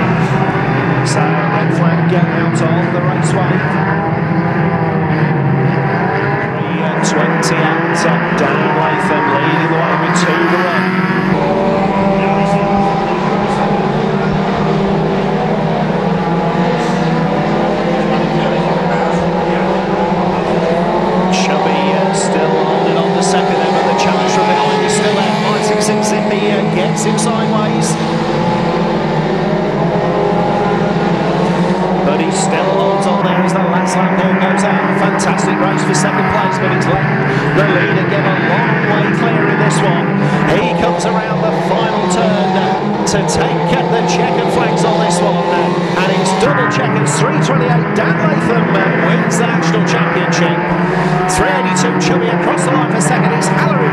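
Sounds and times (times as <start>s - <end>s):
racing car engines revving: 0.0s - 53.9s.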